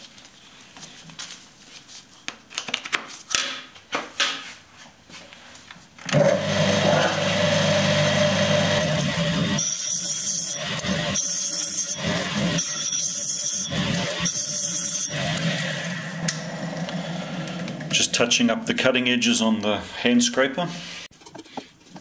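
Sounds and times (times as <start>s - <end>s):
sharpening disc motor running: 6.2s - 18.0s
scraper grinding on disc: 6.2s - 18.1s.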